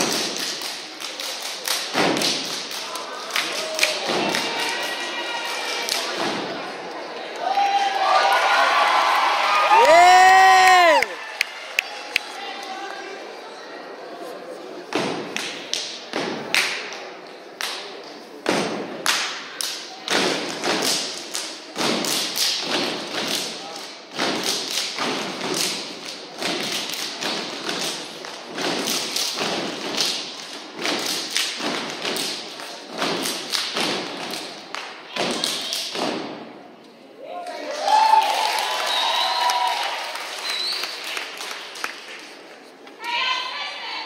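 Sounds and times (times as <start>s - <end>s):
stomps claps and body slaps: 0.0s - 2.8s, 18.5s - 36.4s.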